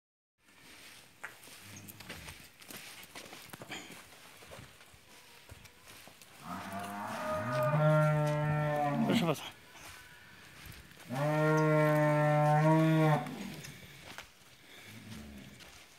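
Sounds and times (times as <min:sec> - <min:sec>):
cow mooing: 0:06.4 - 0:09.3, 0:11.1 - 0:13.6.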